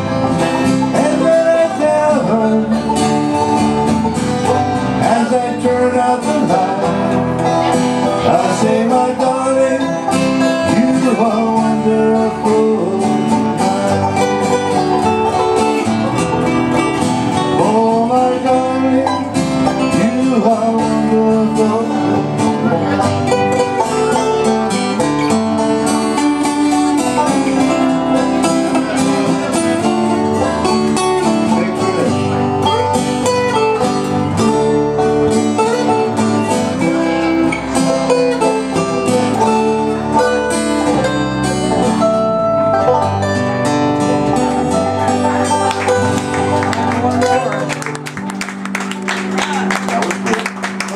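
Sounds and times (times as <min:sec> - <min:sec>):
acoustic band playing: 0:00.0 - 0:50.9.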